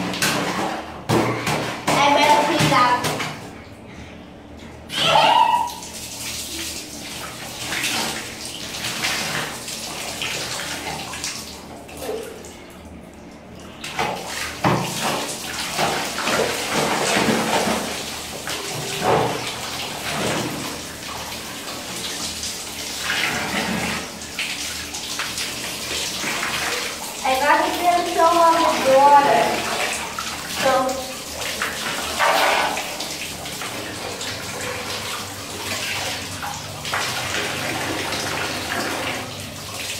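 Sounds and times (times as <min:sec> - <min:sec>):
tap running water: 0:00.0 - 0:03.6, 0:04.6 - 0:12.4, 0:13.3 - 0:39.9
water sloshing in a plastic basin: 0:00.0 - 0:39.9.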